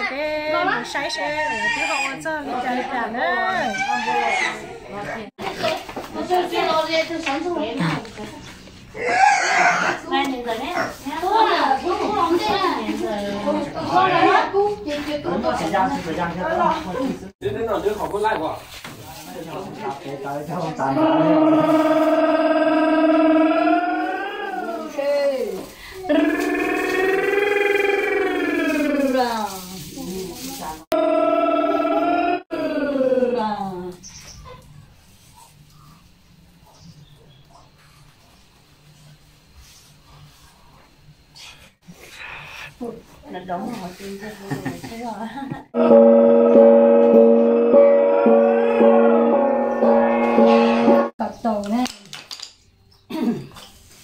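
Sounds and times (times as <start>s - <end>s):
pig squealing: 1.2s - 2.2s, 3.5s - 4.8s, 9.0s - 10.1s
voices and laughter: 44.2s - 45.8s
pulsing musical tone: 45.8s - 51.1s.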